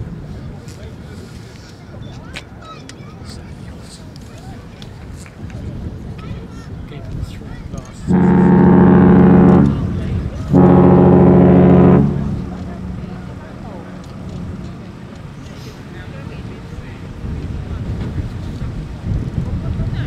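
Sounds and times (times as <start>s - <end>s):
ship's horn blasts: 8.0s - 16.8s.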